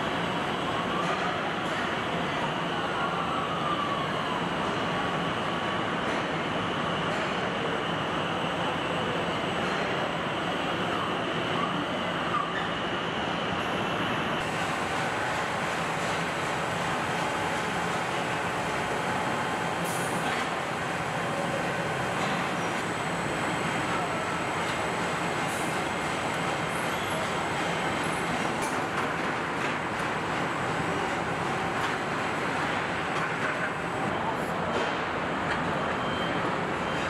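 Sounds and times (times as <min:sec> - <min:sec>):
machinery and conveyors running: 0:00.0 - 0:37.0.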